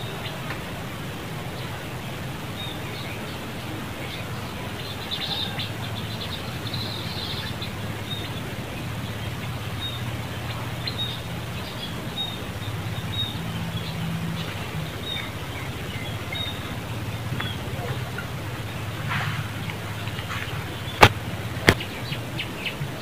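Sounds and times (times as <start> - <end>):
low steady hum: 0.0 - 23.0
small birds chirping: 0.0 - 23.0.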